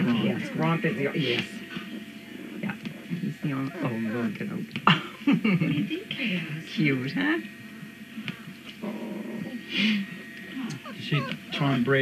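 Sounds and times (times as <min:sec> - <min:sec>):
puppies whimpering and squeaking: 0:00.0 - 0:04.4, 0:09.2 - 0:12.0.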